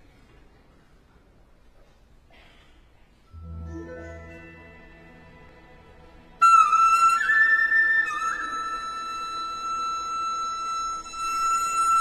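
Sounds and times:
flute holding high note: 6.4 - 12.0.

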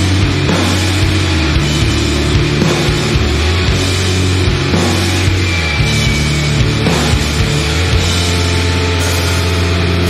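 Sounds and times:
rock band playing distorted chord: 0.0 - 10.0.

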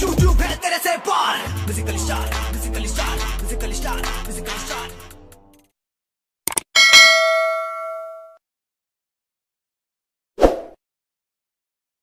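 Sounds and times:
bell ding: 6.8 - 8.4.

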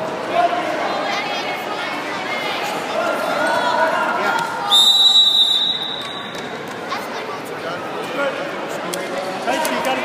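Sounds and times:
referee whistle blast: 4.7 - 6.3.

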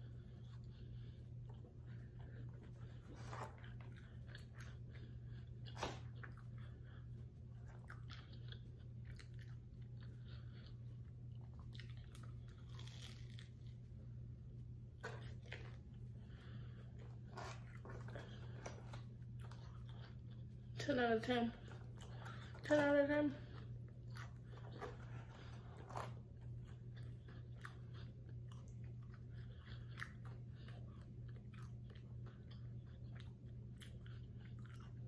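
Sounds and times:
crunchy food being chewed: 0.0 - 20.8, 21.6 - 35.0
steady low hum: 0.0 - 35.0.

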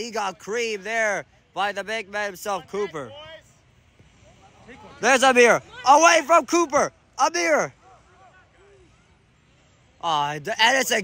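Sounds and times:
quiet outdoor ambience: 0.0 - 11.0.

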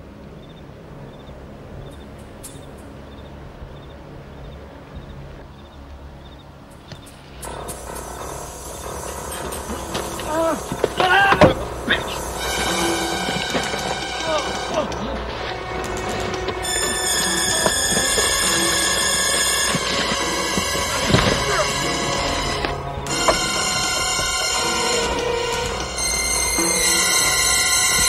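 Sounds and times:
tense film score: 0.0 - 28.0
men grunting and crying out: 9.6 - 15.4.

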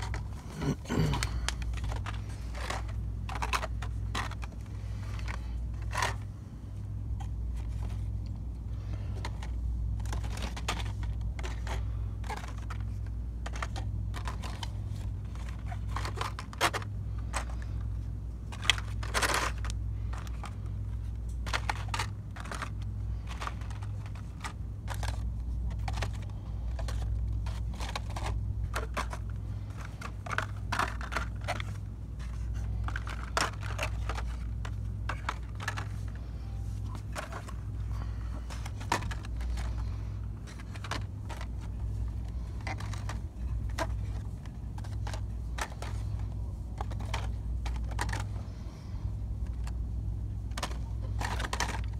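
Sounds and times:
plastic packaging clicks and crinkles: 0.0 - 6.3, 7.2 - 51.9
steady low hum: 0.0 - 51.9.

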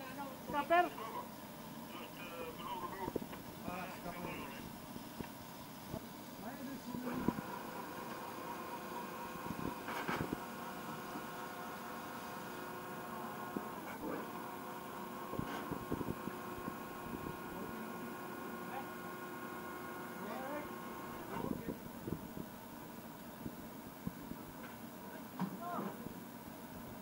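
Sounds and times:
davit motor whining: 6.8 - 22.5.

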